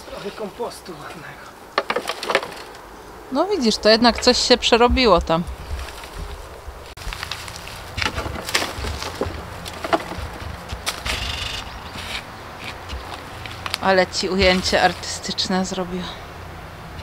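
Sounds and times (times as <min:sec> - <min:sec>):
low background rumble: 0:02.7 - 0:17.0
fork scraping compost: 0:07.0 - 0:15.2.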